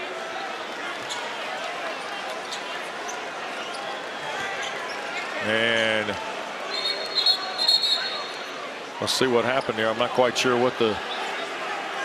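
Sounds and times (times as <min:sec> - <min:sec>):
crowd murmur indoors: 0:00.0 - 0:12.0.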